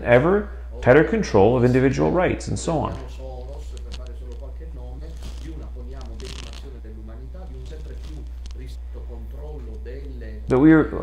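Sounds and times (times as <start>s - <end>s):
low hum: 1.4s - 11.0s
rustling hiss: 2.8s - 10.4s
man speaking faintly: 2.8s - 10.5s.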